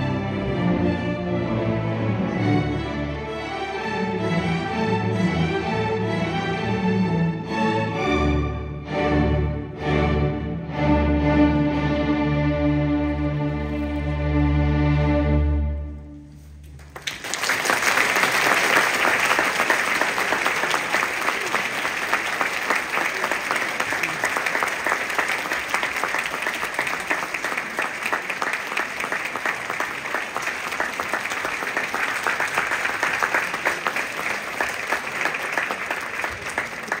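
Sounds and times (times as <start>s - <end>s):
audience applauding: 16.7s - 37.0s.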